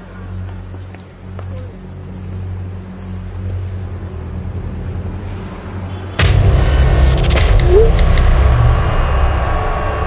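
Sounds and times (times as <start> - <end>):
deep low rumble: 6.2 - 10.0.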